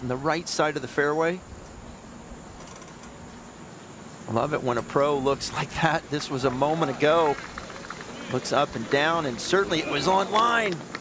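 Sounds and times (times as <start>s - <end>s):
faint outdoor background hiss: 0.0s - 11.0s.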